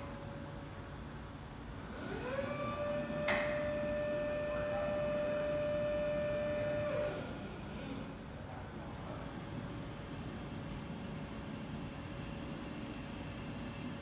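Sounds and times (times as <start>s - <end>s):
hydraulic pump motor whining: 1.9s - 7.3s.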